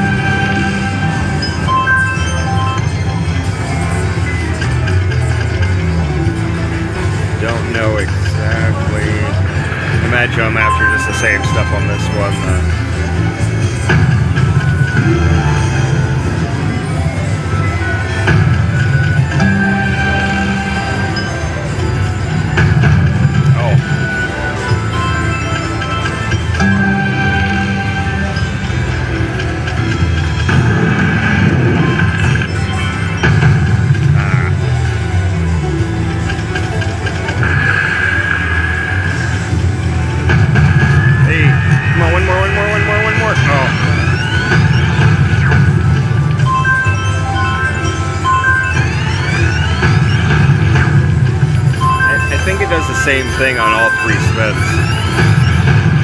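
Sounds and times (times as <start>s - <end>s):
slot machine game music: 0.0s - 56.0s.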